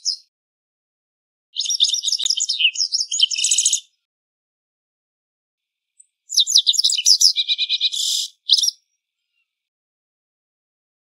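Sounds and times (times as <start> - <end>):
bird chirping: 0.0 - 0.3, 1.6 - 4.0, 6.0 - 9.6
bird call: 6.3 - 8.8.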